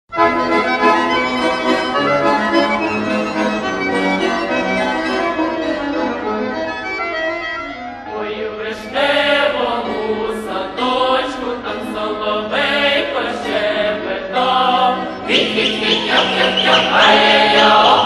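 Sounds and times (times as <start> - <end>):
accordion: 0.1 - 18.0
folk singing: 8.1 - 18.0.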